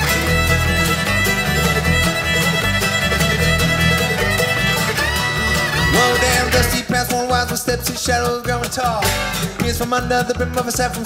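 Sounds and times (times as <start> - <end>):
fiddle playing long notes: 0.0 - 7.2
acoustic guitar picking: 0.0 - 11.0
banjo: 0.0 - 11.0
mandolin: 0.0 - 11.0
upright bass: 0.0 - 11.0.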